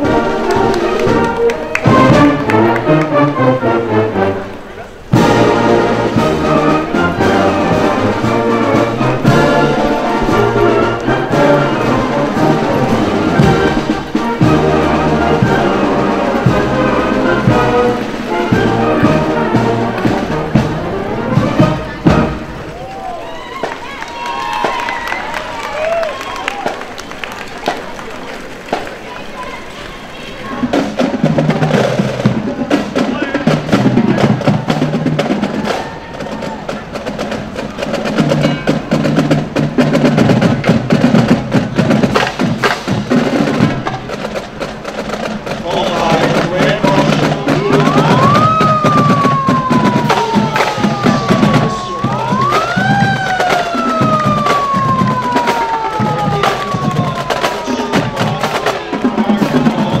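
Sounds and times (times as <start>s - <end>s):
drumline with rim clicks: 0.0s - 3.4s, 4.5s - 60.0s
brass marching band playing: 0.0s - 60.0s.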